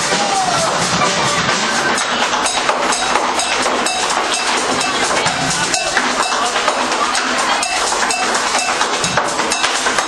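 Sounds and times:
subway train clattering on rails: 1.5 - 10.0.

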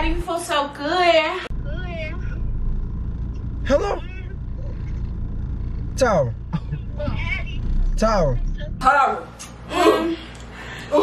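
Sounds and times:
car cabin engine and road rumble: 0.0 - 0.4, 1.5 - 9.2.

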